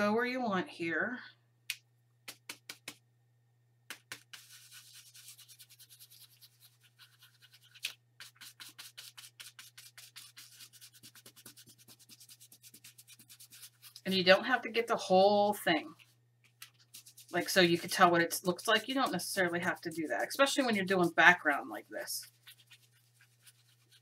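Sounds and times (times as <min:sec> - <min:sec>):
brush tapping on paper: 0:02.2 - 0:03.0, 0:03.9 - 0:14.0, 0:16.4 - 0:24.0
brush scrubbing on paper: 0:04.1 - 0:14.4, 0:15.7 - 0:24.0.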